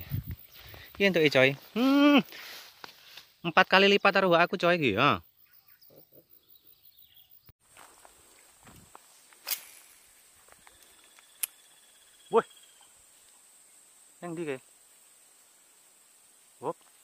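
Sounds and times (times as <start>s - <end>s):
sharp clicks: 10.6s - 11.6s.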